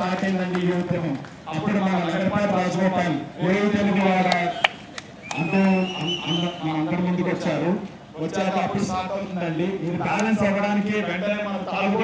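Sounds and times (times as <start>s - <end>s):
man talking: 0.0s - 4.7s, 5.3s - 12.0s.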